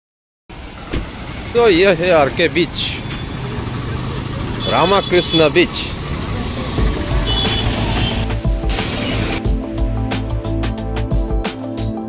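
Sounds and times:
busy road traffic: 0:00.5 - 0:11.3
man speaking: 0:01.4 - 0:03.1, 0:04.6 - 0:06.9.

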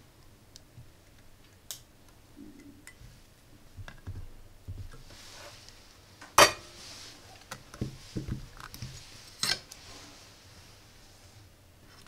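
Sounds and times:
soft handling sounds: 0:02.9 - 0:12.0.

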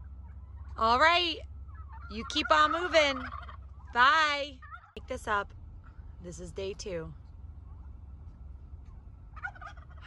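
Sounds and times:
turkeys gobbling: 0:00.0 - 0:05.0, 0:07.5 - 0:10.0
low steady rumble: 0:00.0 - 0:10.0.

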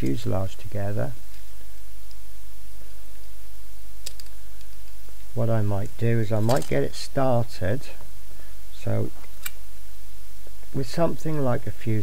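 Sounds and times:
low hum with hiss: 0:00.0 - 0:12.0
plastic model parts click: 0:04.0 - 0:04.7, 0:05.8 - 0:06.8.

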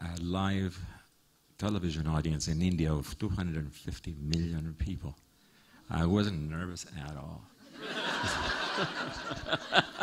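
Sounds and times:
audience laughing: 0:07.8 - 0:10.0.

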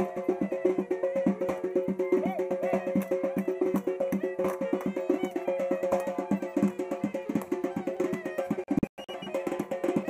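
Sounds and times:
clarinet playing fast melody: 0:00.0 - 0:10.0.

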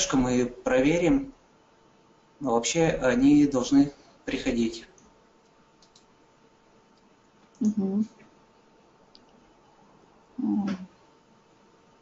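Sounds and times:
woman humming: 0:07.6 - 0:08.2, 0:10.4 - 0:11.0.

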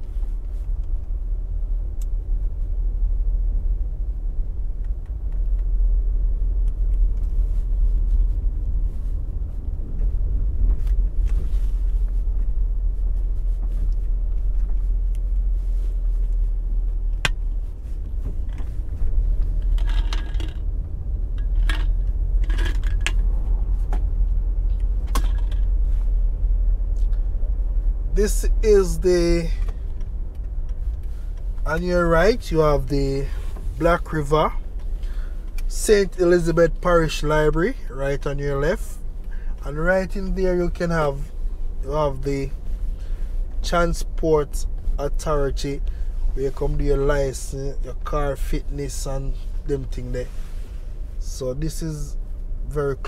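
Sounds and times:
road and wind noise: 0:00.0 - 0:53.0
vehicle rumble: 0:00.0 - 0:53.0
light clinks and rattles: 0:19.5 - 0:20.7.

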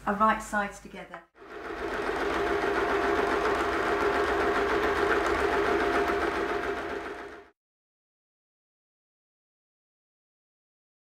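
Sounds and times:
sewing machine running: 0:01.4 - 0:07.6.

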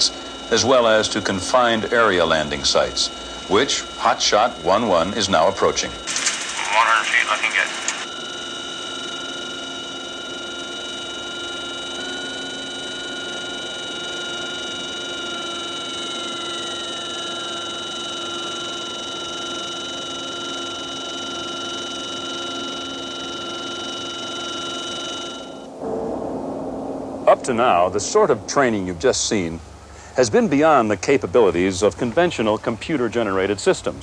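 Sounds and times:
helicopter turbine whine: 0:00.0 - 0:34.0.

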